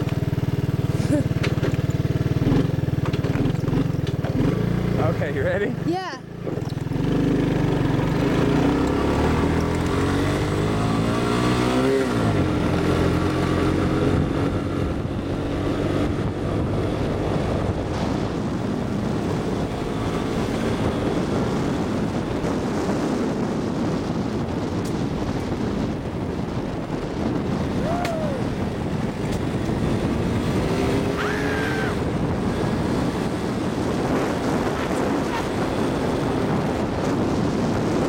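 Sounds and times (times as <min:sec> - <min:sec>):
three-wheeler engine accelerating: 0:00.0 - 0:38.0.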